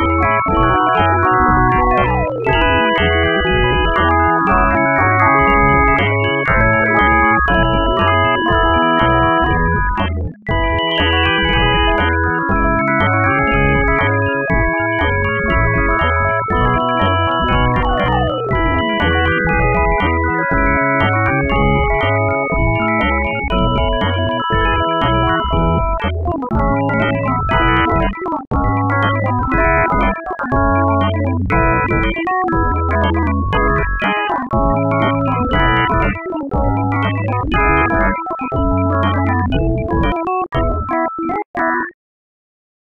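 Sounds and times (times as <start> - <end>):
heavy low notes pulsing: 0.0 - 40.1
dense synthesized keyboard notes: 0.0 - 41.1.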